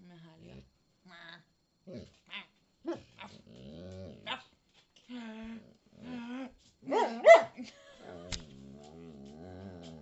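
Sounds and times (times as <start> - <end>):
dog whining and grumbling: 2.9 - 4.4, 5.1 - 6.6, 8.1 - 10.0.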